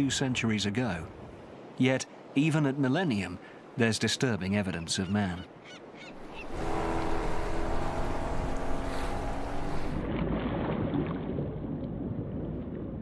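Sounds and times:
rushing water: 0.0s - 13.0s
steady droning hum: 6.2s - 10.0s.

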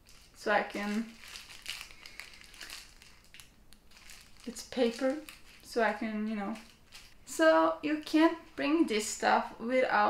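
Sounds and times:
tissue packet crinkling: 0.0s - 7.2s.

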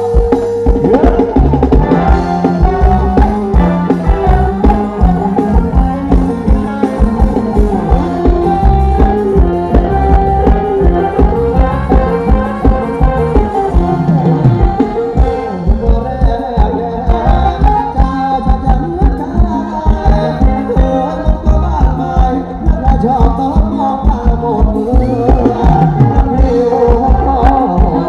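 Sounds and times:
band playing dance music: 0.0s - 28.0s.

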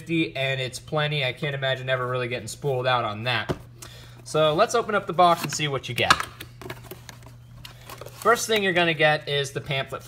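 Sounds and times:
paper rustling: 6.6s - 8.8s.

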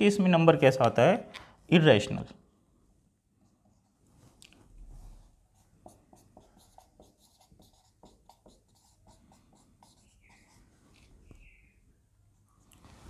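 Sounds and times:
marker writing on whiteboard: 5.5s - 11.7s
marker squeak: 9.8s - 10.6s.

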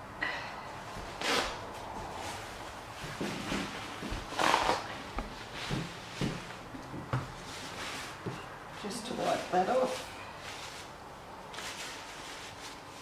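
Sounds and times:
cloth rustling and wiping: 7.2s - 13.0s.

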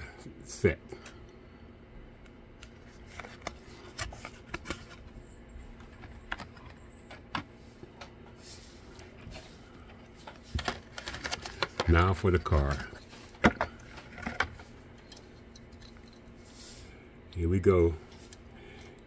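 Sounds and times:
cardboard card handling clicks and taps: 2.6s - 8.2s, 9.9s - 14.7s.

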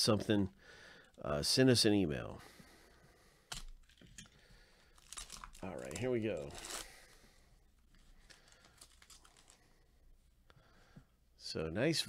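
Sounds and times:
trading cards rustling and clicking: 7.9s - 9.6s.

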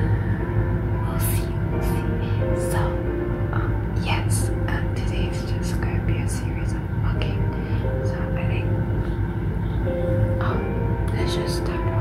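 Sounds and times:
background music with held notes: 0.0s - 12.0s
woman speaking softly: 1.0s - 8.8s, 10.4s - 12.0s.

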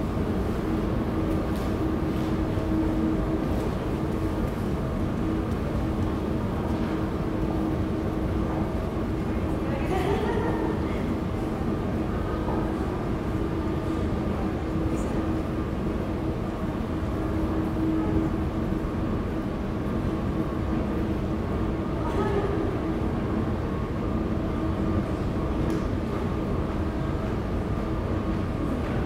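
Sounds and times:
constant droning hum: 0.0s - 29.0s
low city rumble: 0.0s - 29.0s.

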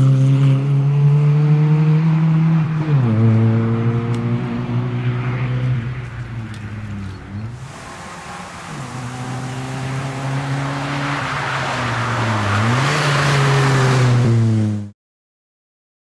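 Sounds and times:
rally car engine revving: 0.0s - 14.9s.

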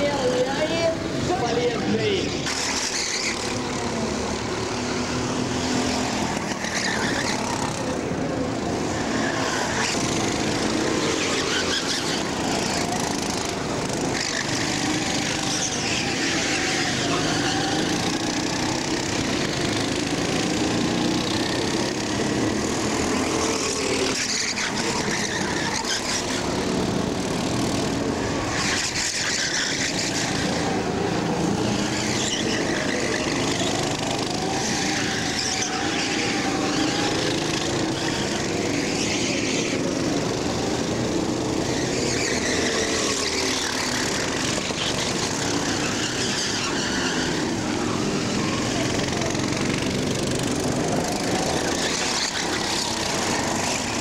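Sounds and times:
kart engines racing: 0.0s - 54.0s.

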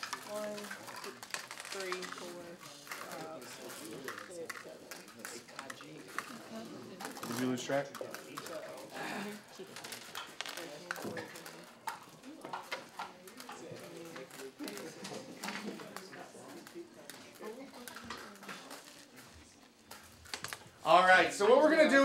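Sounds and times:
students talking low: 0.0s - 20.9s.

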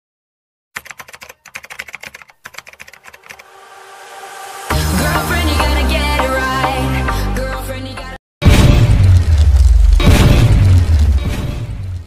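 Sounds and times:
computer keyboard typing: 0.8s - 3.5s
rising swell: 3.2s - 7.0s.

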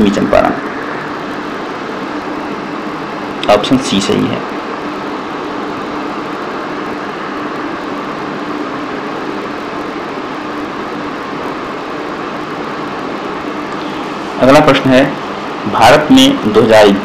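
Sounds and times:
faint low hum: 0.0s - 17.0s.

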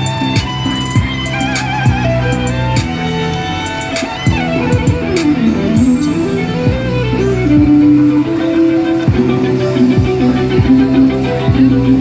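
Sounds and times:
backing music with beat and bass: 0.0s - 12.0s
electric violin melody: 0.0s - 12.0s.

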